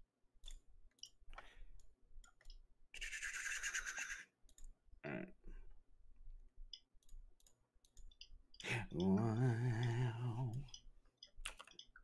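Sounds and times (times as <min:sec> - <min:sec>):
mouse and keyboard clicks: 0:10.5 - 0:12.0.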